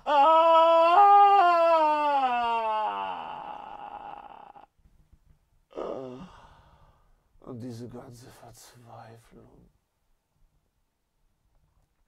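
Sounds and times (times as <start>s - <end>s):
man sobbing: 0.0s - 4.7s, 5.7s - 6.4s
man wailing cry: 0.0s - 4.7s.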